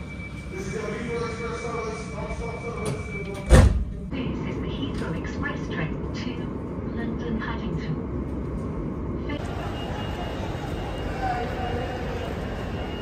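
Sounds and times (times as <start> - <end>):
station concourse hubbub: 0.0 - 13.0
train rumbling: 0.0 - 13.0
faint voices: 9.2 - 13.0.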